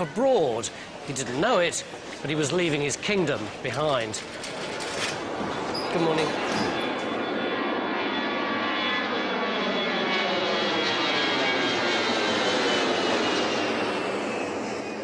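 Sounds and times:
jet airliner engines whining: 0.0s - 15.0s.

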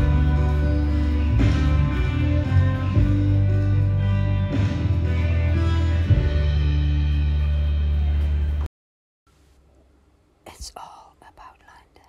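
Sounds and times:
person whispering: 10.4s - 12.0s.

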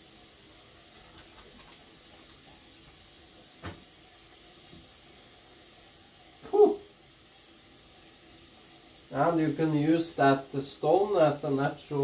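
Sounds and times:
tap running into sink: 3.6s - 3.9s.

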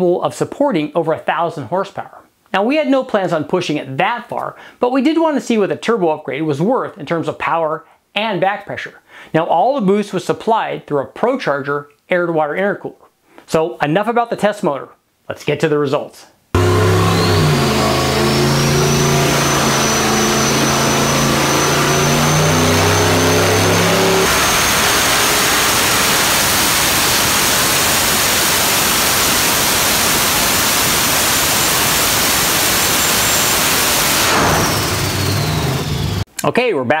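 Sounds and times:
engine on dyno power pull: 16.6s - 36.3s
high turbo whine: 16.6s - 36.3s.

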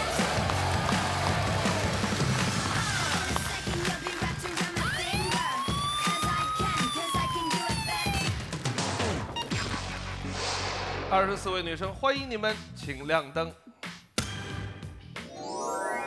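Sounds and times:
upbeat music with steady beat: 0.0s - 10.4s.

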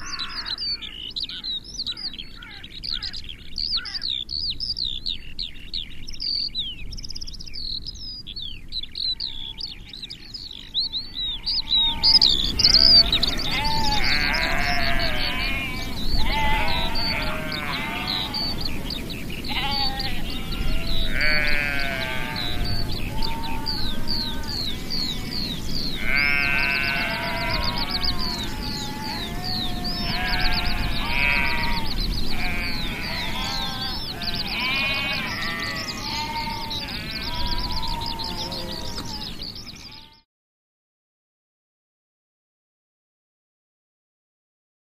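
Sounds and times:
birdsong: 0.0s - 40.3s
sheep bleating: 0.1s - 0.6s, 11.3s - 18.7s, 19.4s - 40.2s.

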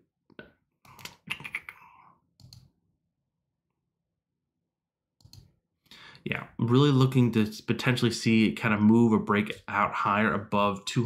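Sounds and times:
mouse and keyboard clicks: 2.4s - 2.7s, 5.2s - 5.5s.

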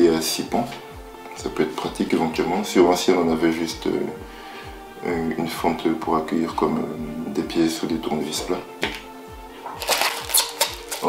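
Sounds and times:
background music with beat: 0.0s - 11.0s
plastic bag crinkling: 9.7s - 11.0s.

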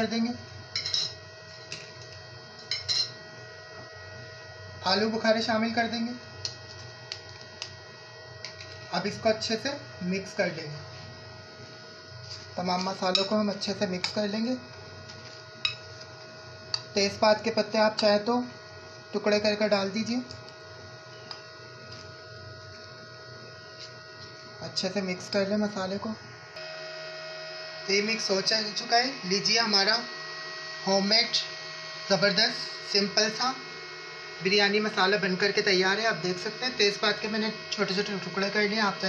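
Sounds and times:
steady electrical hum: 0.0s - 39.0s.

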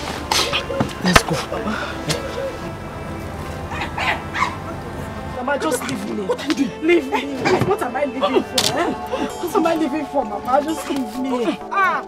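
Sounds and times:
background music: 0.0s - 12.0s
dog barking: 3.7s - 4.6s.

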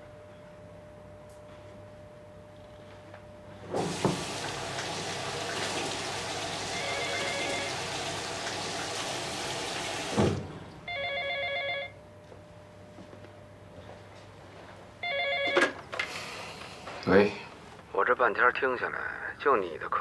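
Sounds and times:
water running into sink basin: 3.8s - 10.5s
electronic telephone ringing: 6.6s - 7.9s, 10.9s - 12.0s, 15.0s - 15.8s.

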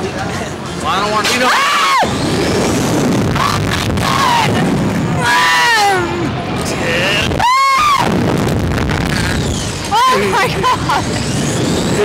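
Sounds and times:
wind roaring on microphone: 0.5s - 12.0s
person screaming: 6.9s - 8.1s.

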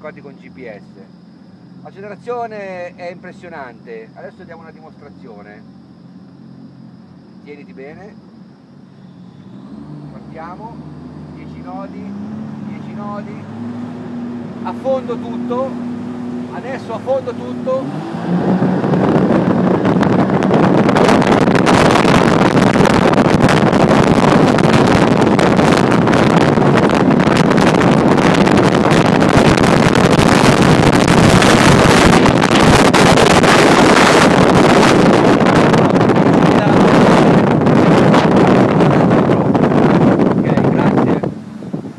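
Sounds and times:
jet boat engine at full throttle: 0.0s - 41.9s
wind buffeting microphone: 0.0s - 41.9s
rushing water: 9.6s - 41.9s.

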